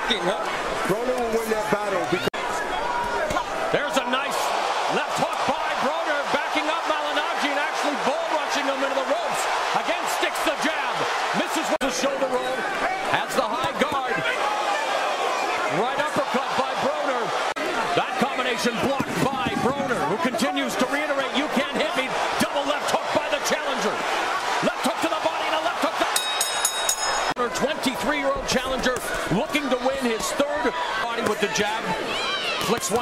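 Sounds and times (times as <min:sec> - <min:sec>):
crowd voices: 0:00.0 - 0:33.0.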